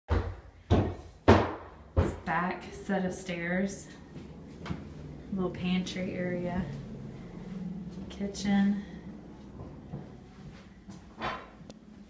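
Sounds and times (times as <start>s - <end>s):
heavy footsteps on stairs: 0.1s - 2.4s, 3.8s - 5.4s, 9.0s - 12.0s.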